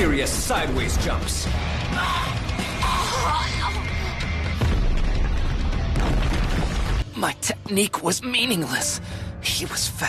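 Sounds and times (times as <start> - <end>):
dramatic soundtrack music: 0.0 - 10.0
heavy rumbling boom: 4.6 - 7.0.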